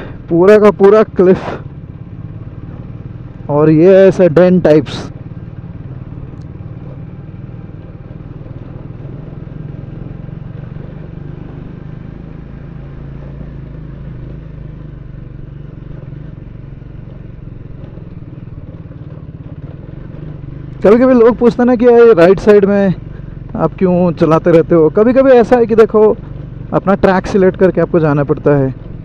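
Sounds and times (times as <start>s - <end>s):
motorcycle engine droning: 0.0s - 29.0s.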